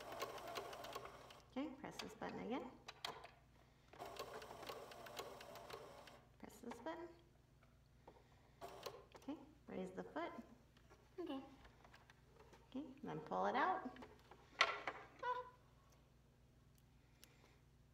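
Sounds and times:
sewing machine stitching: 0.0s - 3.3s, 3.9s - 6.2s, 8.6s - 9.2s.

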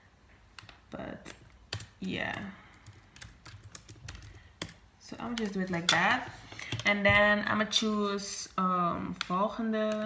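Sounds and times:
laptop keyboard typing: 0.5s - 7.3s.

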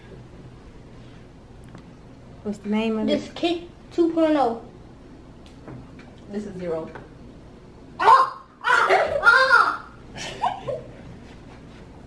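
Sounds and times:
young person crying out: 8.0s - 10.0s.

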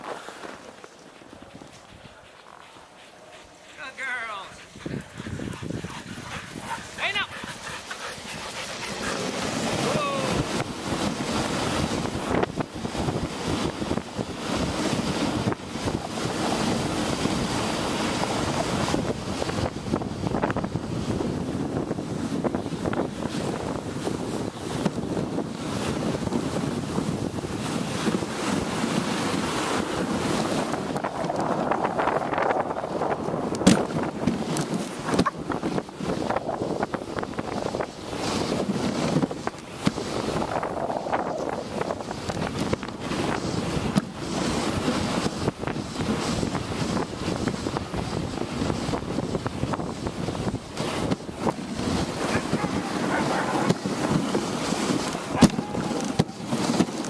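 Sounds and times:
sled rushing over snow: 0.0s - 57.0s
wind on microphone: 0.0s - 57.0s
dogs yipping and whining: 52.2s - 53.8s, 55.3s - 56.4s.

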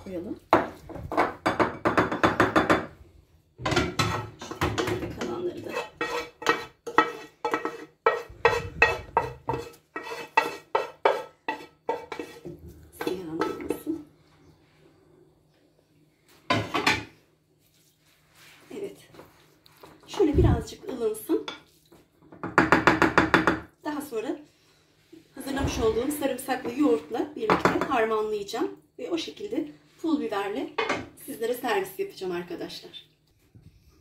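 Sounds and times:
wooden spoon scraping pan and bowl: 3.8s - 14.1s, 25.1s - 27.2s.

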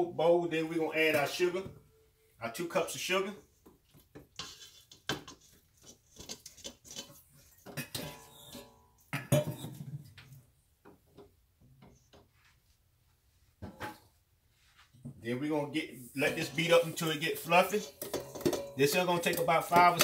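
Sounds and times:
utensils clinking against metal bowl: 4.3s - 9.8s, 16.2s - 20.0s.

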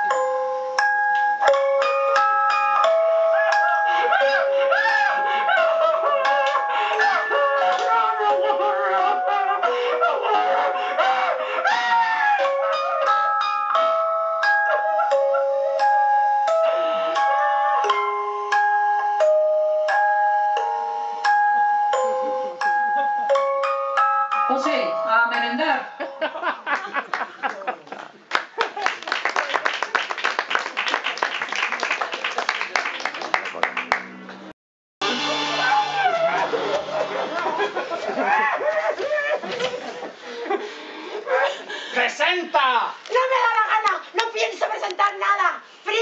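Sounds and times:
audience applauding: 26.7s - 39.8s.

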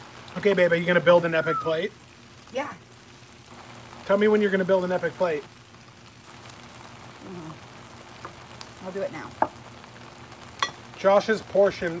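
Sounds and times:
noodles sizzling on griddle: 0.0s - 12.0s.

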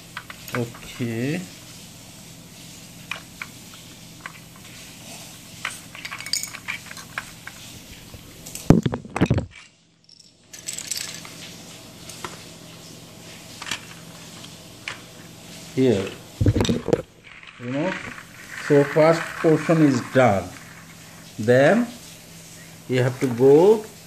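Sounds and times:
loud knock and handling noise: 8.6s - 9.6s, 16.4s - 17.1s.

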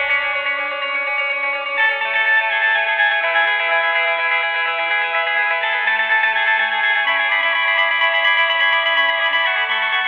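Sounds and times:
electric guitar with effects: 0.0s - 10.0s.

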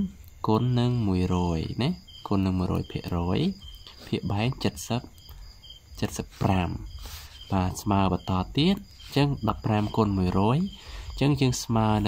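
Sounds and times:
man speaking: 0.0s - 5.2s, 5.9s - 12.0s
crickets chirping: 0.0s - 12.0s.

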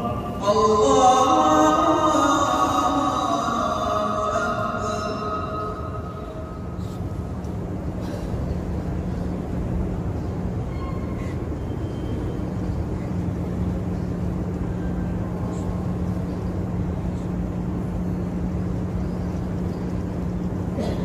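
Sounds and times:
constant low hum: 0.0s - 21.0s
faint murmur of people: 5.8s - 21.0s.

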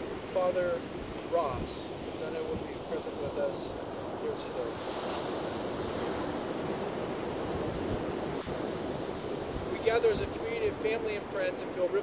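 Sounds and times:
ocean surf rushing: 0.0s - 12.0s
wind on microphone: 4.2s - 10.9s.

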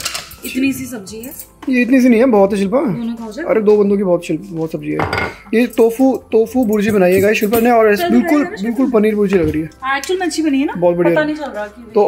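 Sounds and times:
people talking: 0.4s - 3.8s, 5.6s - 12.0s
kitchenware clattering on counter: 5.0s - 5.5s.

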